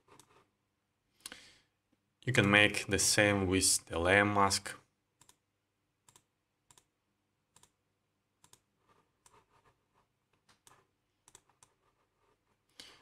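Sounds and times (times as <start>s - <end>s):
computer mouse clicks: 0.0s - 0.4s, 5.2s - 5.4s, 6.0s - 6.9s, 7.5s - 7.8s, 8.4s - 9.4s, 10.4s - 11.8s.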